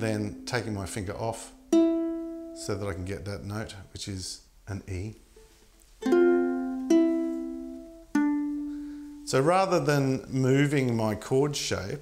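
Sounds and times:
ukulele chords plucked: 0.2s - 3.0s, 6.0s - 9.1s.

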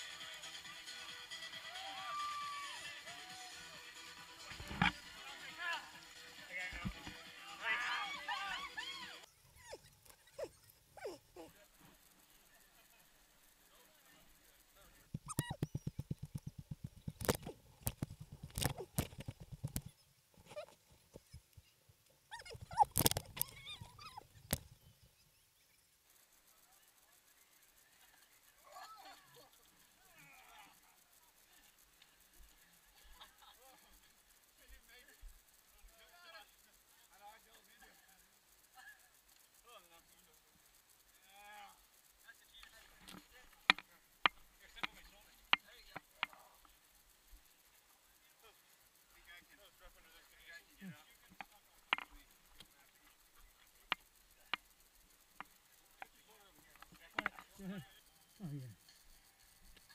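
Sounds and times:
distant people shouting: 1.5s - 3.8s, 7.5s - 9.3s
people yelling: 1.6s - 3.8s, 7.5s - 9.3s
low thuds of jostled camera: 15.1s - 20.6s.

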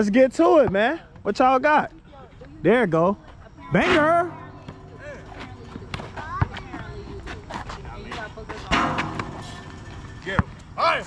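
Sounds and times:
men calling out and talking: 2.6s - 11.0s
basketball bouncing on asphalt: 4.3s - 10.7s.

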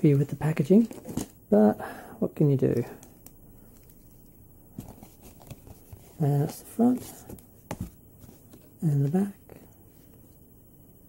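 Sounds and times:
plastic toys and cardboard rustling: 0.0s - 1.4s, 4.8s - 9.3s.

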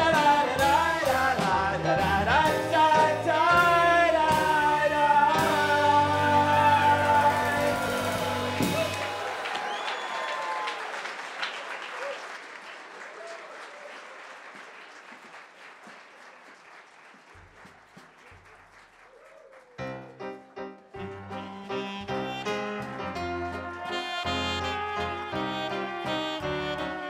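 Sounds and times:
live band and singers: 0.0s - 9.3s
audience applause: 6.7s - 21.6s.

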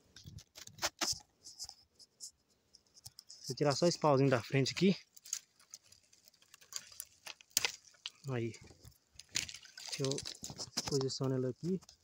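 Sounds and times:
dry twig breaking and scratching: 2.8s - 12.0s.

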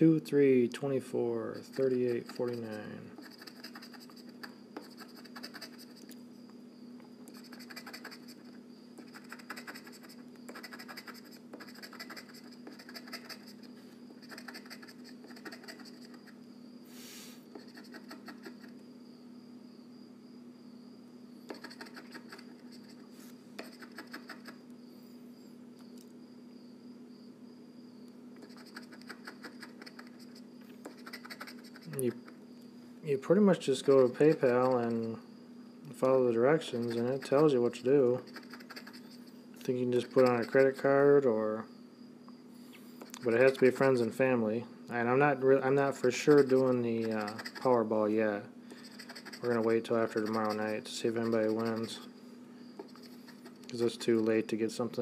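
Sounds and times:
scratching a scratch-off ticket: 1.5s - 6.1s, 7.3s - 13.6s, 14.2s - 16.4s, 17.5s - 18.7s, 21.5s - 24.6s, 28.4s - 32.4s, 33.5s - 35.2s, 36.0s - 41.0s, 43.2s - 44.1s, 45.7s - 48.0s, 48.8s - 52.1s, 52.8s - 54.2s.

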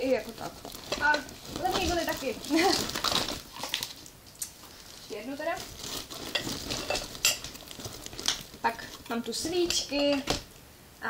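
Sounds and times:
shopping items rustling and clattering: 0.0s - 3.9s, 4.8s - 10.5s.

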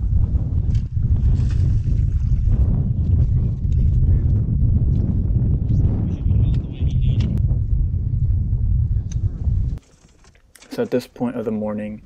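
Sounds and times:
wind buffeting microphone: 0.0s - 9.8s.

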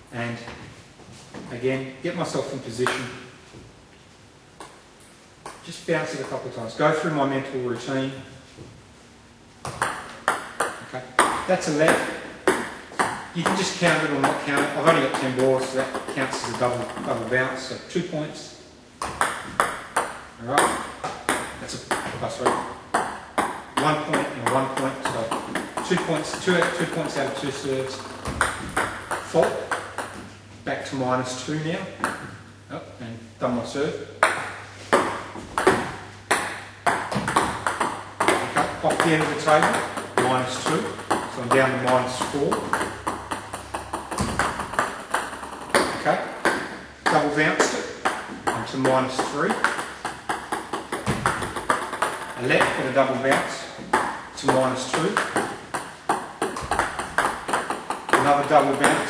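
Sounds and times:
ball bouncing on table: 9.6s - 17.2s, 19.0s - 30.4s, 32.0s - 32.4s, 34.2s - 59.0s
ball clicking off bat: 34.2s - 59.0s.

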